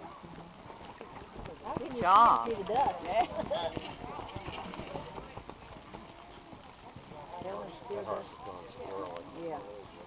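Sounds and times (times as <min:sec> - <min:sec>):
faint voices: 0:00.0 - 0:10.0
horse hoofbeats on dirt: 0:00.0 - 0:10.0.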